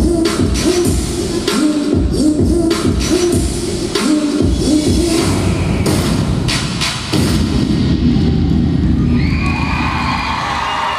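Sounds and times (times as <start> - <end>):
bass-heavy music: 0.0 - 10.6
audience cheering and screaming: 7.9 - 10.9.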